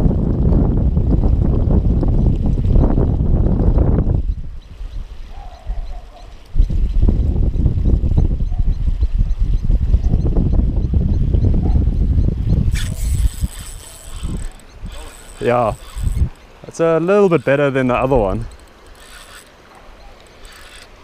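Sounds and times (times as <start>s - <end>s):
water trickling: 0.0s - 9.8s, 10.8s - 21.0s
wind buffeting microphone: 0.0s - 19.4s
fishing reel cranking: 12.7s - 16.5s, 17.3s - 19.6s, 20.2s - 21.0s.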